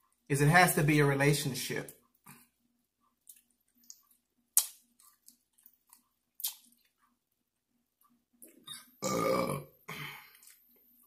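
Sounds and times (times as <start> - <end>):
man sucking and chewing: 3.2 - 7.2.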